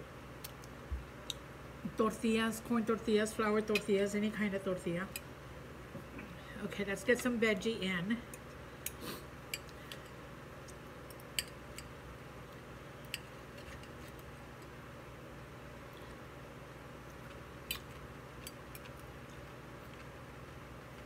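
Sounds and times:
faint room hum: 0.0s - 21.0s.

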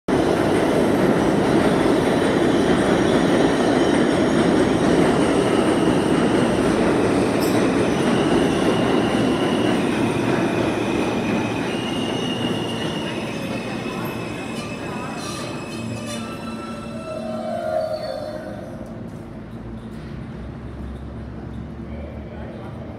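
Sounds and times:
train wheels rumbling on rail: 0.1s - 22.9s.

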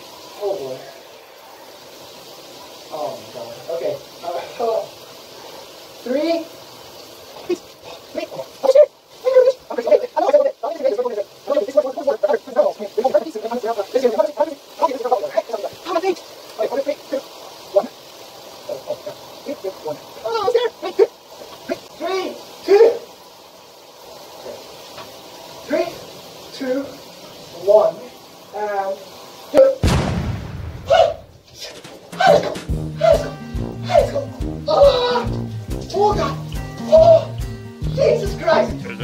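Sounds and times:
shower water running: 0.0s - 29.9s, 30.6s - 39.0s.

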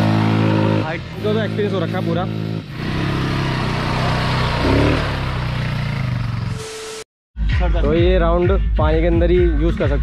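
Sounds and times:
small quad engine running: 0.0s - 6.6s.

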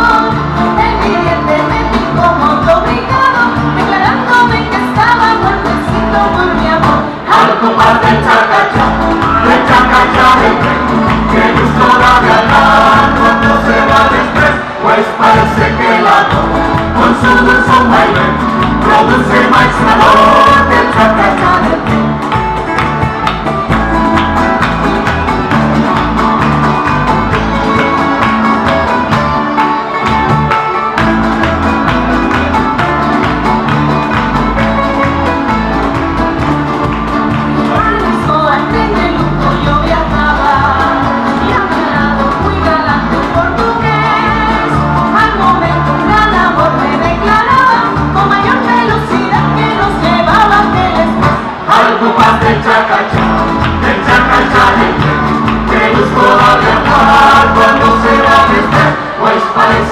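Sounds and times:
accordion: 0.0s - 59.9s
bass guitar: 0.0s - 59.9s
strummed plucked strings: 0.0s - 59.9s.

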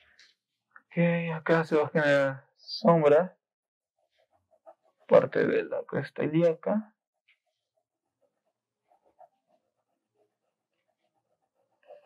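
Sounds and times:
pencil scratching on paper: 7.5s - 12.0s.

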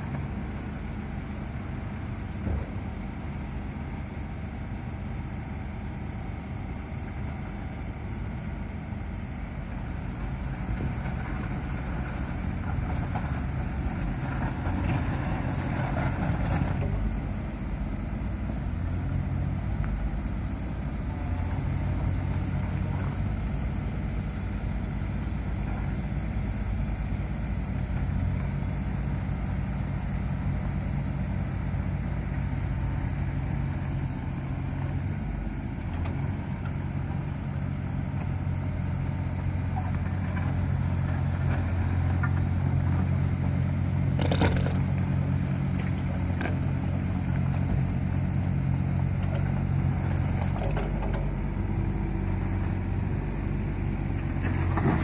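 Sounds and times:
diesel excavator engine running: 0.0s - 55.0s
crunching and scraping gravel: 44.1s - 45.2s.

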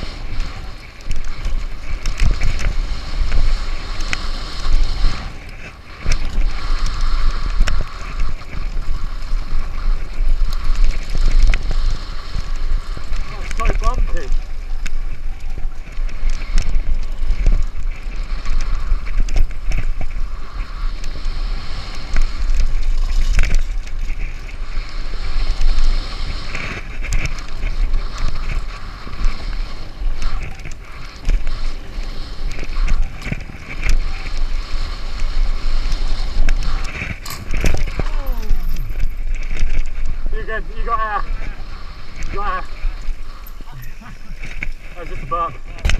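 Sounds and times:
tyre noise on dirt: 0.0s - 45.9s
wind rumble on microphone: 0.0s - 45.9s
bike rattling and knocking: 22.0s - 40.3s.

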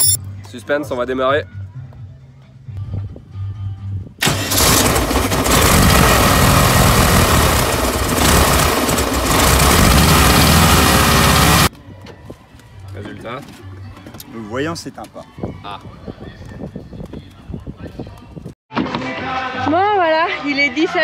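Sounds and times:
engine cranking and running: 4.2s - 11.7s.

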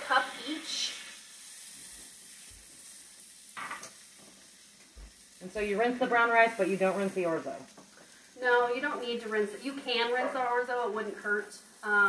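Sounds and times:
rice sizzling in oil: 0.0s - 12.0s.

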